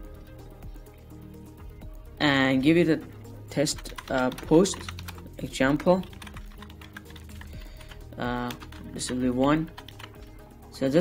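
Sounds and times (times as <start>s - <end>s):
keyboard typing: 3.7s - 10.3s.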